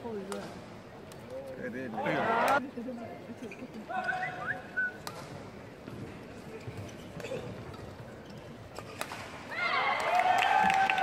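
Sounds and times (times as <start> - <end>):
murmur of spectators talking: 0.0 - 9.6
racket hitting shuttlecock: 8.8 - 9.5.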